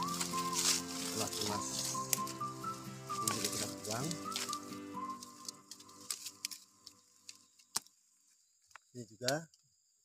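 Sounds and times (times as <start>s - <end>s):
background music: 0.0s - 7.0s
shoots and leaves snapping: 0.0s - 8.0s
branch cracking: 0.0s - 9.6s.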